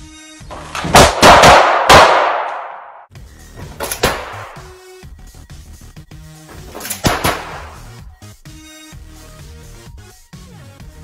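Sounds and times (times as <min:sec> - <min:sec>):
handgun shots echoing: 0:00.6 - 0:03.1, 0:03.8 - 0:04.7, 0:06.7 - 0:07.9.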